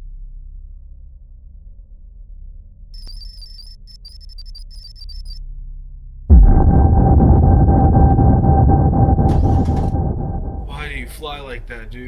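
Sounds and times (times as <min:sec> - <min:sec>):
spaceship engine rumble: 0:06.3 - 0:12.0.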